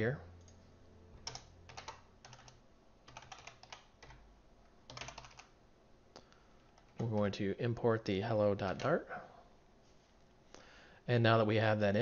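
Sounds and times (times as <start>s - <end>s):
faint keyboard typing: 0.4s - 7.4s, 8.6s - 9.0s.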